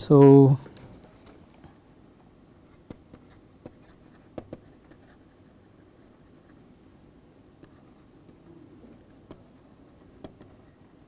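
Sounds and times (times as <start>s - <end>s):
stylus tapping on tablet screen: 2.8s - 4.7s.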